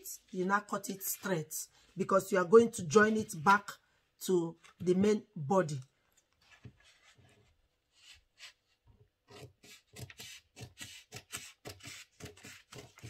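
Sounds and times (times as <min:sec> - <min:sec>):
scissors snipping paper: 0:09.3 - 0:13.0.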